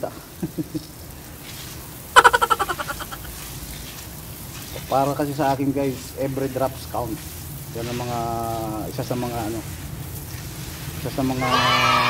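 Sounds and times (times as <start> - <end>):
water spraying from hose nozzle: 0.0 - 11.5
person laughing: 2.2 - 3.3
rapid chattering call: 2.2 - 3.3.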